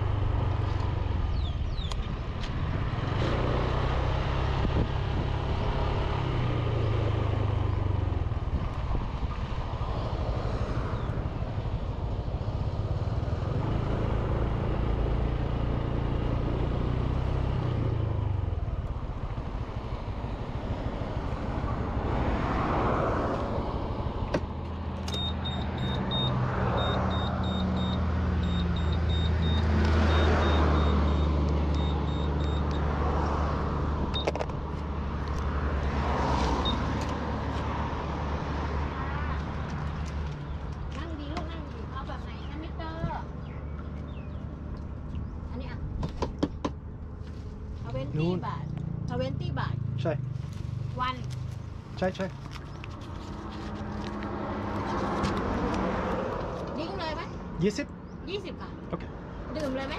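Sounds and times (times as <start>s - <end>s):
wind and road noise: 0.0s - 59.9s
high electronic beeping: 25.2s - 32.9s.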